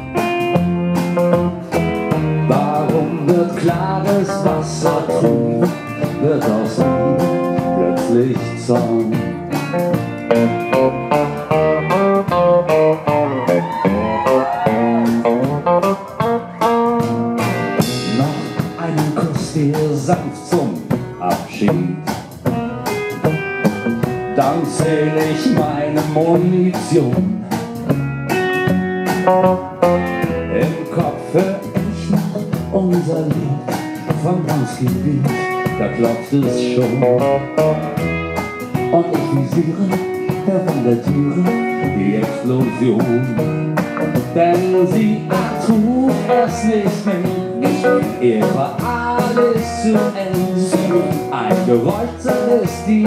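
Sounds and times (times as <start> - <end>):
acoustic guitar strumming chords: 0.0 - 53.0
upright double bass: 0.0 - 53.0.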